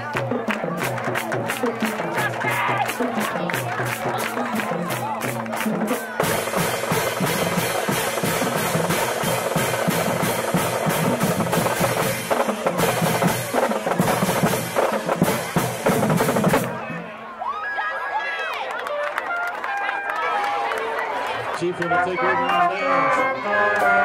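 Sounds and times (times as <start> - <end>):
voices and shouts: 0.0 - 6.6, 16.8 - 24.0
drumline playing fast beat: 0.0 - 17.1.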